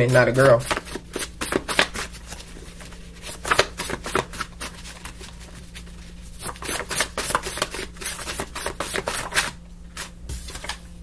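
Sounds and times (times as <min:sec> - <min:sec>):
cards being shuffled: 0:00.4 - 0:10.9.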